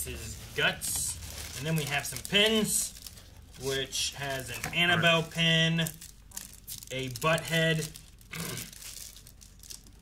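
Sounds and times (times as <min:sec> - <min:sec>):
packaging crinkling and rustling: 0:00.0 - 0:10.0.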